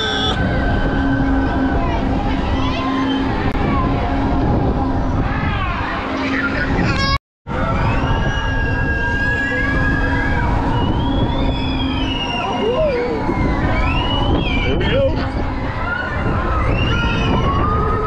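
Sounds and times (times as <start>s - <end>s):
riders shrieking: 0.0s - 0.4s
wind rushing over microphone: 0.0s - 18.0s.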